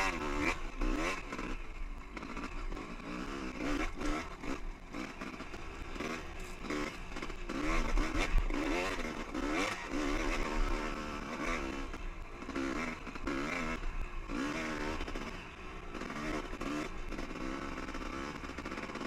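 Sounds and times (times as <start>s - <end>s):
dirt bike engine revving: 0.0s - 19.0s.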